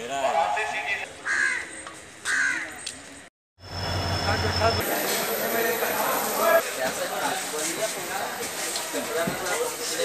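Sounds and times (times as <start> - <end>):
crow cawing: 1.2 - 2.8.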